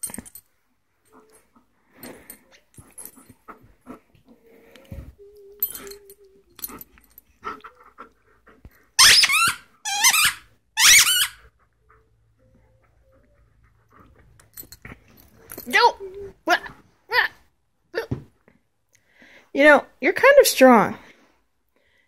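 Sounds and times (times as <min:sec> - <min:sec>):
toy squeaker squeaking: 0:09.0 - 0:11.5.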